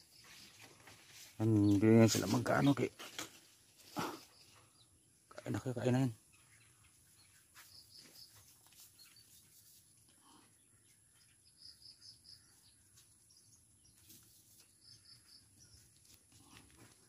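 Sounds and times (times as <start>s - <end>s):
rabbits nibbling leaves: 0.0s - 4.2s, 7.5s - 10.4s.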